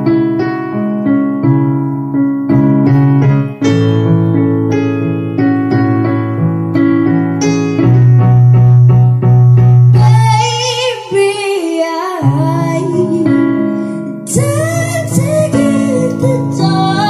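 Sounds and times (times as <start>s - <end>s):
electronic keyboard piano chords: 0.0s - 17.0s
child singing with vibrato: 10.0s - 13.5s, 14.2s - 17.0s.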